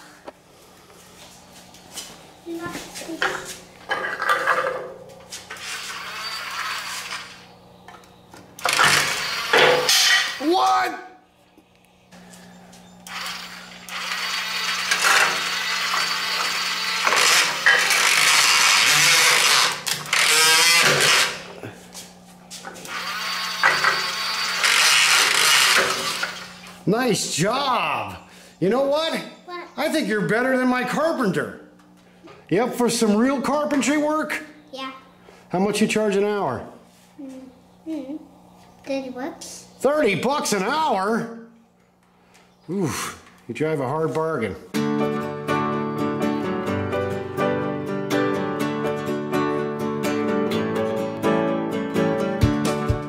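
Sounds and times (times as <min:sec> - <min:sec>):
toy saw sound effect: 0:13.1 - 0:21.4, 0:22.9 - 0:26.5.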